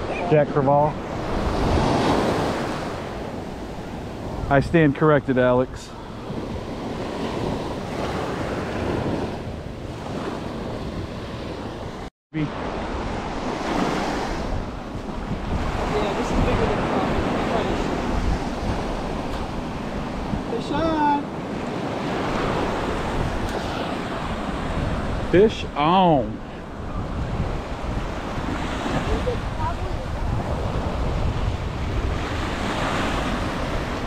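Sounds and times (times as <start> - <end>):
surf waves on sandy beach: 0.0 - 34.0
wind rumbling on microphone: 0.0 - 34.0.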